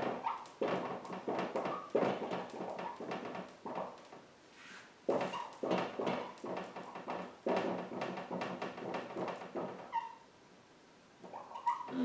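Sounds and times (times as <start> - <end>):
marker squeaking on whiteboard: 0.0 - 10.3, 11.2 - 12.0.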